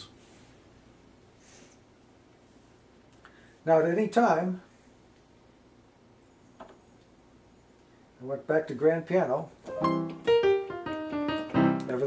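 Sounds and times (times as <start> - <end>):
piano notes and chord: 9.7 - 12.0.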